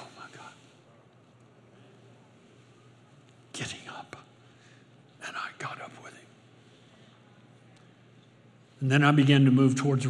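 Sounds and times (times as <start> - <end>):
man whispering: 0.0 - 1.1, 3.4 - 6.9.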